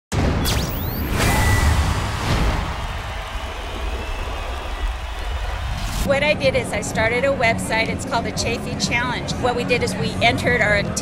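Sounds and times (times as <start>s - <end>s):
brief whoosh: 0.2s - 6.1s.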